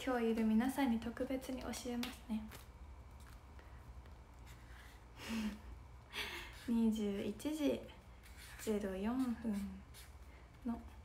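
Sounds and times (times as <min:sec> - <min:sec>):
low room hum: 0:00.0 - 0:11.0
pen scratching on paper: 0:08.2 - 0:10.1.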